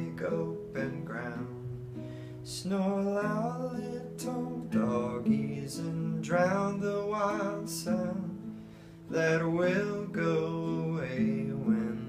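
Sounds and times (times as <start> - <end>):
man singing slow song: 0.0 - 12.0
plucked classical guitar: 0.0 - 12.0.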